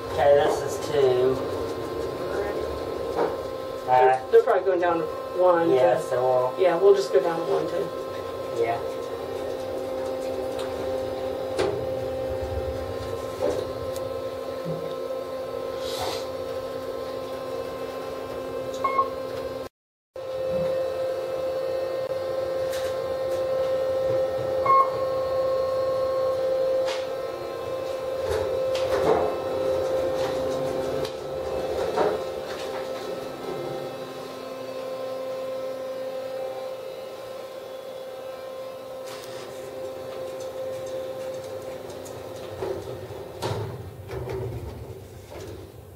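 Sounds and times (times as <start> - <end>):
elevator drive and fan hum: 0.0 - 19.7, 20.3 - 45.9.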